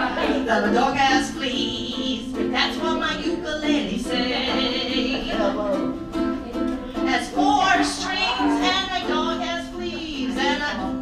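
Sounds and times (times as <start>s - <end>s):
person singing: 0.0s - 11.0s
ukulele: 0.0s - 11.0s.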